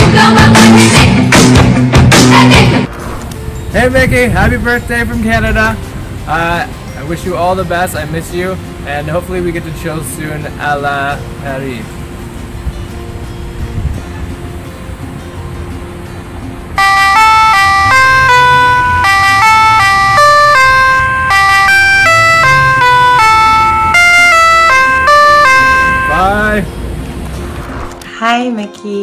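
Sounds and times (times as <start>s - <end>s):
toy megaphone beeping melody: 16.8s - 26.3s.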